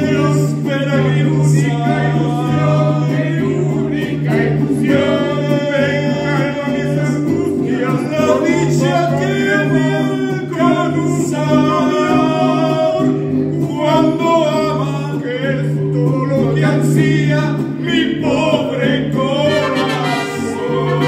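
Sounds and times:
man singing into microphone: 0.0 - 21.0
mariachi band accompaniment: 0.0 - 21.0.

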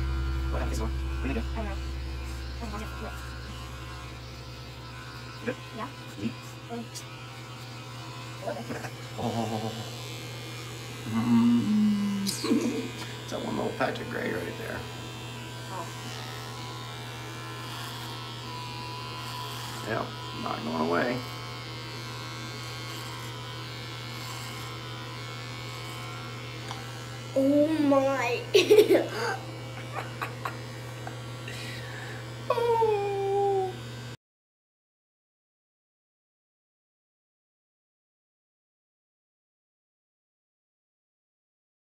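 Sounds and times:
electric beard trimmer buzzing: 0.0 - 34.2.

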